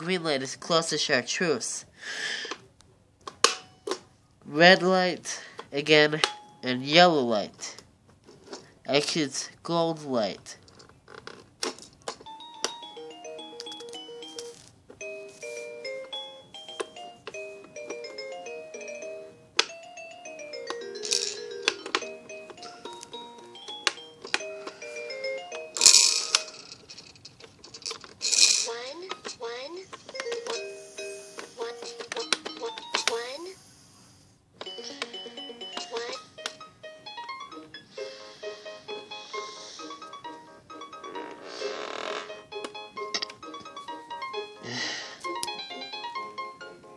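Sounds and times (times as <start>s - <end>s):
toy piano tinny electronic melody: 12.3s - 25.8s, 34.6s - 41.2s.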